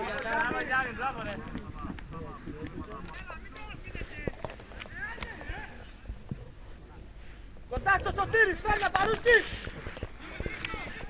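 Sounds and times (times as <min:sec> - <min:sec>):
distant players shouting: 0:07.7 - 0:11.0.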